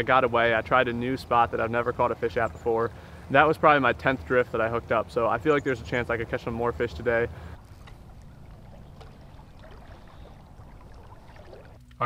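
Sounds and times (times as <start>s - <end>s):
river flowing: 7.3s - 11.8s.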